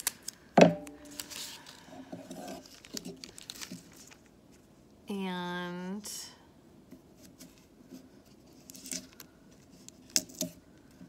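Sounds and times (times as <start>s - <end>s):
tape crinkling and peeling: 0.0s - 4.7s, 7.1s - 11.0s.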